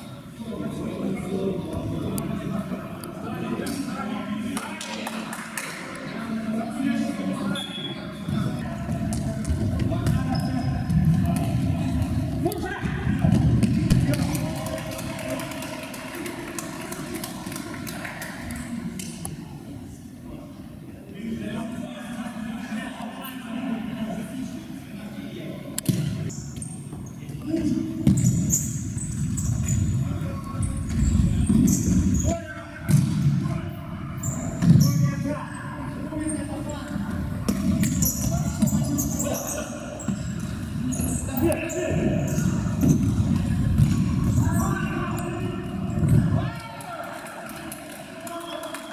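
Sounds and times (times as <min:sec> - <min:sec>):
sneakers squeaking on floor: 0:07.5 - 0:12.2, 0:25.9 - 0:33.2, 0:34.1 - 0:36.6, 0:37.5 - 0:46.0.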